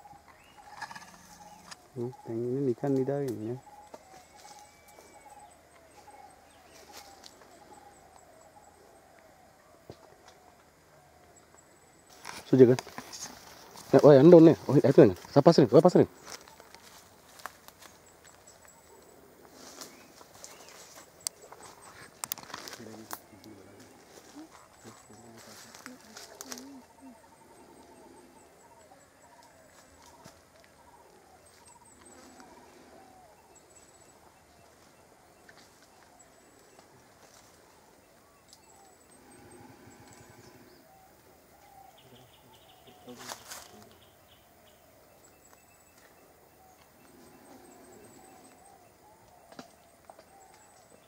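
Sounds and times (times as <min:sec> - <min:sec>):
faint forest ambience: 0:00.0 - 0:51.0.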